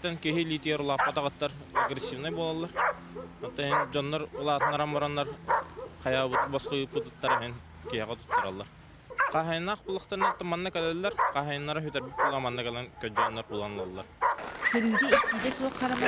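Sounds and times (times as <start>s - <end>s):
man talking: 0.0s - 2.8s, 3.4s - 5.4s, 6.0s - 8.7s, 9.3s - 14.2s
dogs barking: 0.9s - 9.4s, 10.1s - 15.5s.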